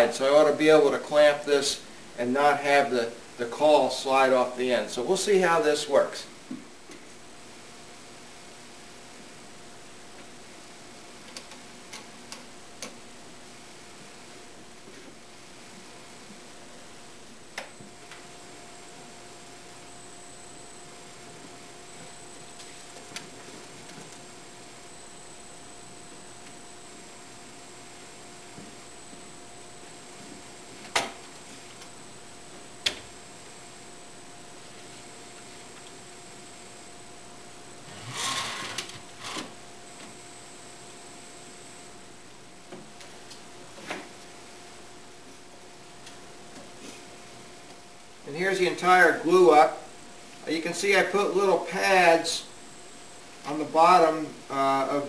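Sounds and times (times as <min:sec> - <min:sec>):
faint hum: 0:00.0 - 0:55.0.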